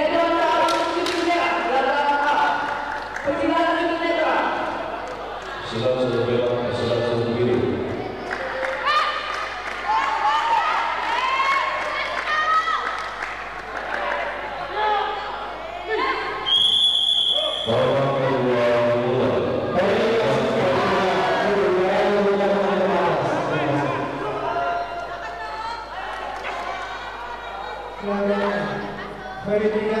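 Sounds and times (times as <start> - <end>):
crowd shouting and chanting: 6.6 - 30.0.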